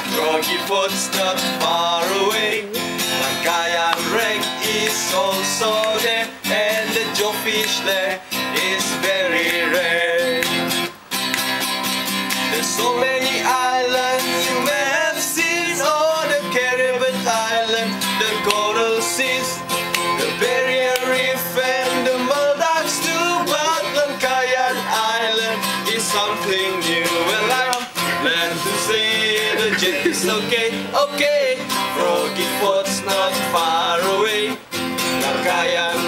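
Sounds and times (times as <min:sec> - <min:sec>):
men singing along: 0:00.0 - 0:10.8, 0:12.4 - 0:36.0
acoustic guitar strumming: 0:00.0 - 0:36.0.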